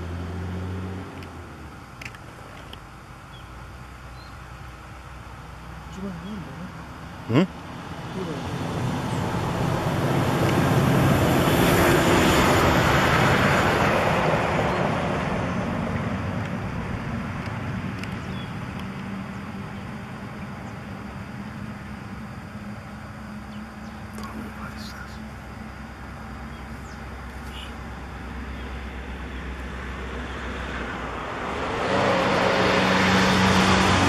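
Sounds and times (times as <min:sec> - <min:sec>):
passing vehicle rushing: 0:07.7 - 0:17.9, 0:24.3 - 0:34.0.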